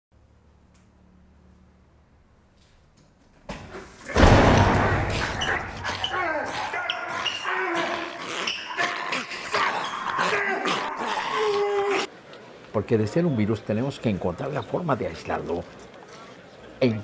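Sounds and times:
loud crash: 0:04.1 - 0:05.8
zombie growling: 0:05.0 - 0:12.1
man shouting and grunting: 0:05.2 - 0:08.2, 0:08.8 - 0:12.1.

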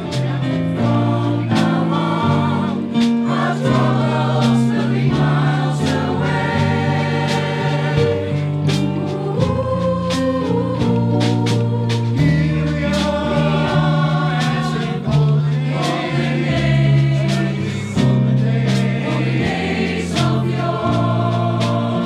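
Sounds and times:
choir singing: 0:00.0 - 0:22.0
instrumental accompaniment with beat: 0:00.0 - 0:22.0.

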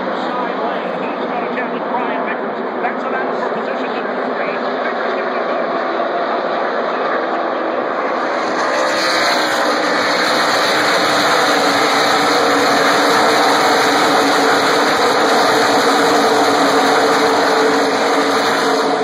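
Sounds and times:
race car engines passing: 0:00.0 - 0:19.0.

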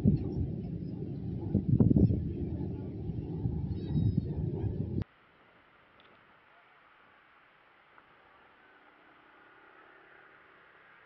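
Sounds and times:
wind buffeting microphone: 0:00.0 - 0:05.0.

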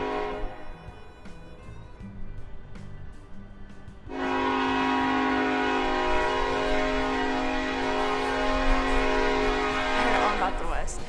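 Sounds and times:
steam locomotive whistle: 0:00.0 - 0:01.2, 0:04.1 - 0:11.0.

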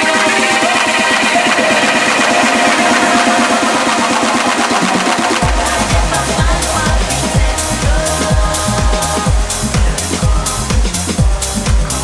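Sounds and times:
steady kick drum: 0:00.0 - 0:12.0
tech house dj mix: 0:00.0 - 0:12.0.

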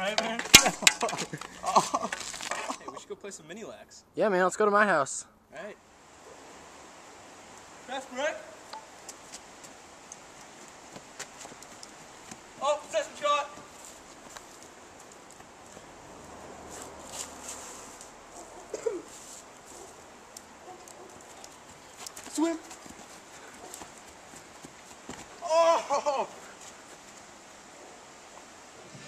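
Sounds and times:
steady outdoor hiss: 0:00.0 - 0:29.0
footfalls running on grass: 0:21.2 - 0:25.5.

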